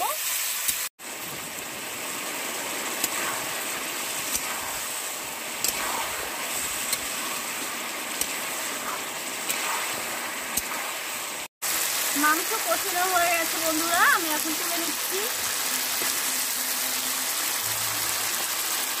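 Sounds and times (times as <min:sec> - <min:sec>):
chicken sizzling in a pan: 0:00.0 - 0:19.0.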